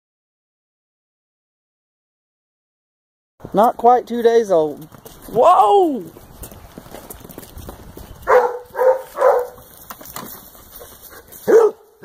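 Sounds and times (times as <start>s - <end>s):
dog barking: 8.2s - 9.6s, 11.4s - 12.0s.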